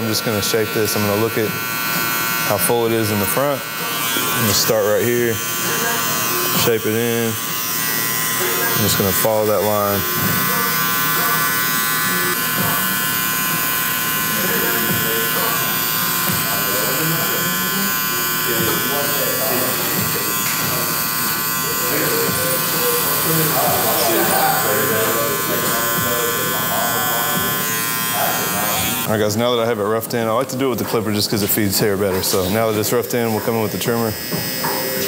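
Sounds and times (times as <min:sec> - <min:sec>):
electric hair clipper whining: 0:00.0 - 0:35.0.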